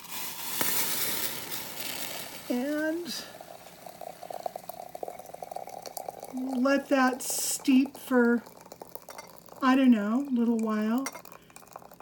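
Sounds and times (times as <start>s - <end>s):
boiled water bubbling and crackling: 0.0s - 12.0s.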